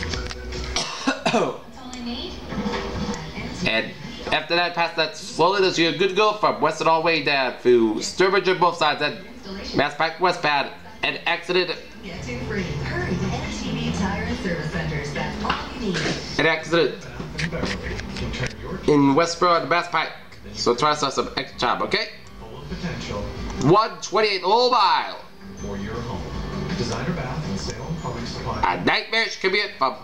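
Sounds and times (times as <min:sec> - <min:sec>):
background music: 0:00.0 - 0:30.0
man clearing throat: 0:00.8 - 0:01.6
man coughing: 0:00.8 - 0:01.6
background speech: 0:01.3 - 0:06.4, 0:07.4 - 0:23.9, 0:25.6 - 0:28.9.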